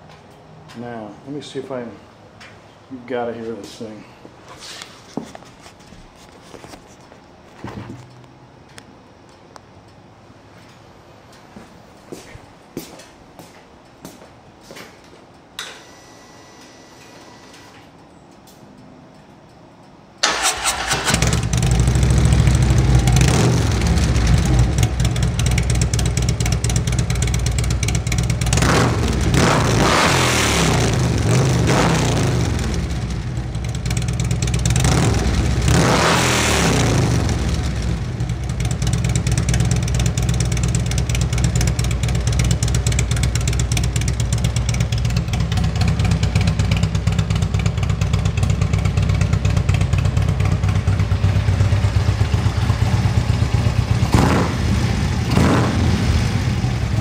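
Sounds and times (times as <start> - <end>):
motorcycle engine revving: 20.2 - 57.0
motorcycle engine starting and idling: 20.2 - 57.0.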